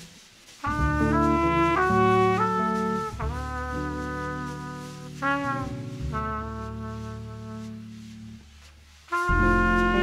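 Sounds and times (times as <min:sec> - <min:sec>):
jazz brass holding a note: 0:00.6 - 0:08.4, 0:09.1 - 0:10.0.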